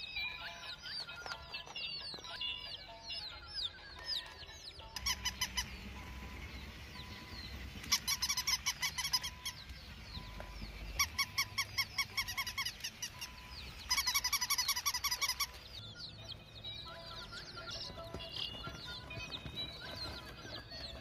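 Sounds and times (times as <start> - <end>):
faint bird chirps: 0.0 - 21.0.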